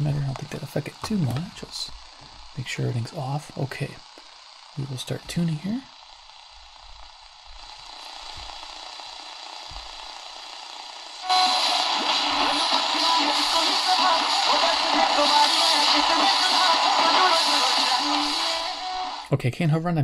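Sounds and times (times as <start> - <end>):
radio music and voice: 0.0 - 2.0, 4.8 - 5.9, 11.3 - 19.4
radio static hiss: 0.0 - 5.9, 11.1 - 19.3.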